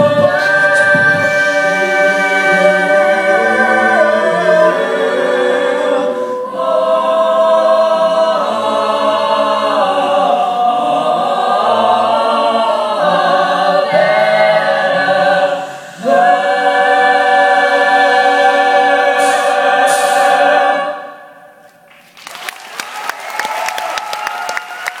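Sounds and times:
a cappella group singing chord: 0.0 - 21.6
audience applause: 21.9 - 25.0.

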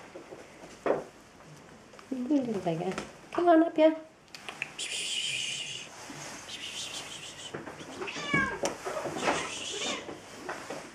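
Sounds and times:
kittens mewing: 6.6 - 10.1.

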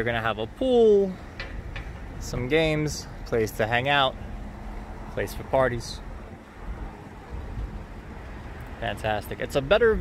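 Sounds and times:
wind rumbling on microphone: 1.2 - 10.0.

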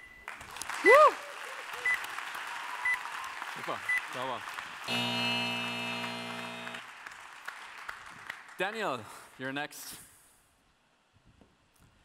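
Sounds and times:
audience clapping: 0.2 - 9.4
person whooping: 0.8 - 1.8
low buzzy held tone: 4.9 - 6.8.

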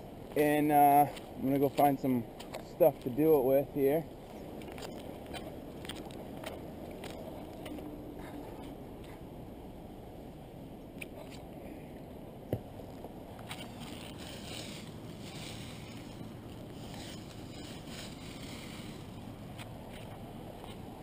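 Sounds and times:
steady low rumble: 0.0 - 21.0.

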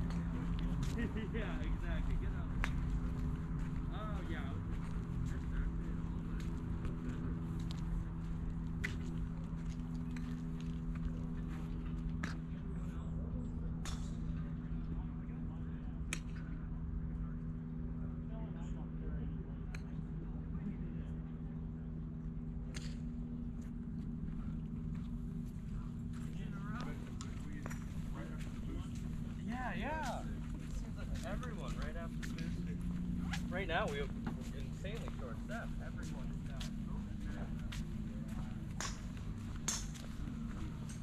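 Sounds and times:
steady low hum: 0.0 - 41.0
golf clubs striking balls: 13.8 - 14.8, 22.6 - 23.6, 26.6 - 28.7, 37.4 - 41.0.

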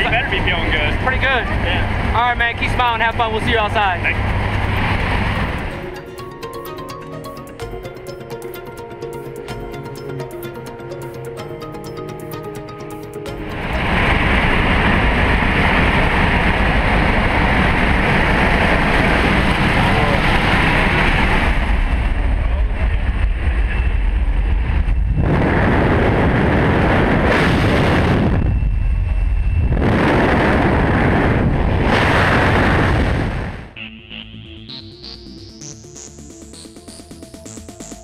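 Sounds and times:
loud rushing wind: 0.0 - 6.0, 13.3 - 33.8
aircraft engine noise: 0.0 - 38.0.

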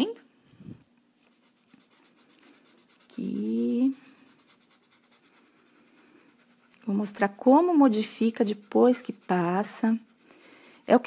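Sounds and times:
cotton swab rubbing on paper: 1.2 - 10.2.

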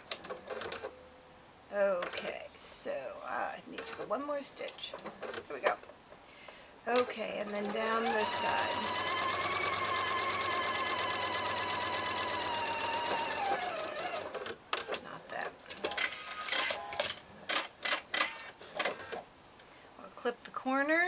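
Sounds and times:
sewing machine stitching: 7.2 - 15.0.

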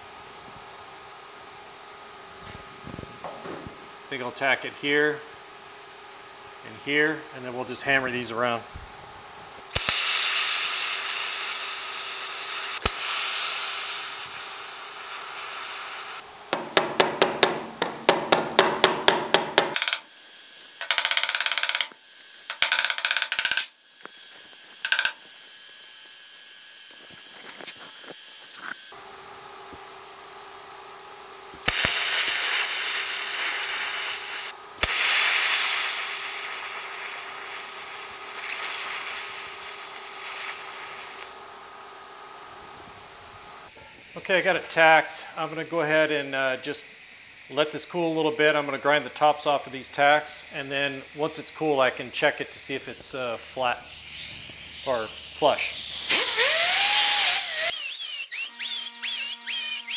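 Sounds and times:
welding arc hissing: 9.7 - 16.7, 19.8 - 29.0, 31.6 - 41.5, 43.7 - 59.9.

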